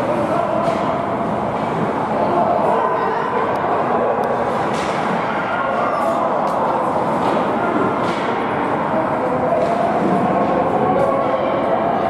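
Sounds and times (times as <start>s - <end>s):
hockey sticks hitting puck: 0.6s - 1.0s
hubbub of shouting voices: 5.0s - 12.0s.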